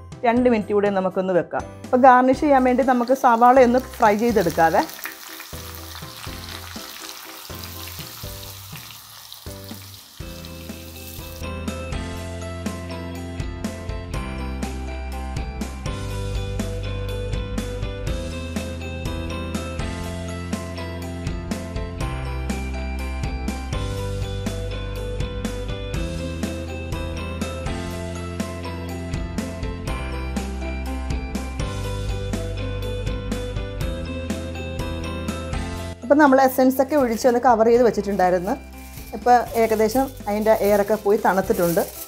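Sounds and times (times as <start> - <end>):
onions sizzling in a pan: 2.8 - 11.5, 38.2 - 42.0.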